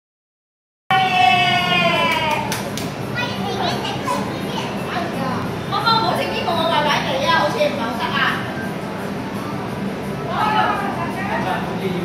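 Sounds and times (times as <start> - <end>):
children chattering and calling: 3.0 - 7.8.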